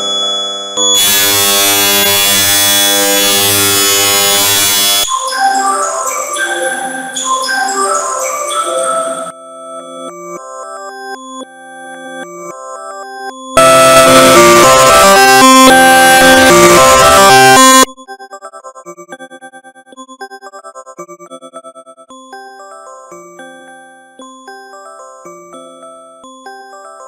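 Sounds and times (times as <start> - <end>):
bell-like phone tone melody: 13.6 - 17.9.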